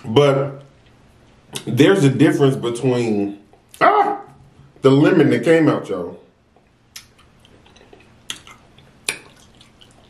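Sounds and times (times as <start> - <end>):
wet eating squelches: 6.5 - 10.0.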